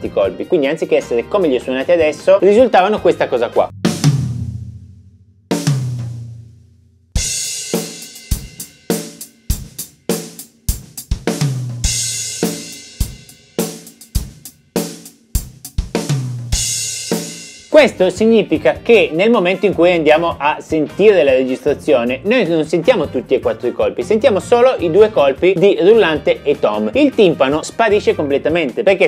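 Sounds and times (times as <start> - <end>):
snare and tom fill: 3.6 - 6.6, 7.2 - 18.0
cymbal crash: 3.7 - 6.5
floor tom strokes: 3.7 - 17.7.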